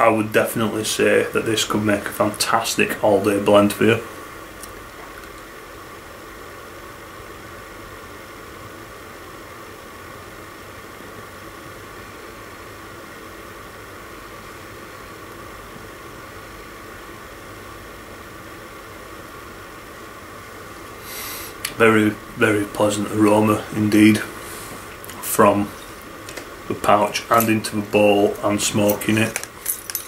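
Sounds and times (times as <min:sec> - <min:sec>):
steady background hiss: 0:00.0 - 0:30.0.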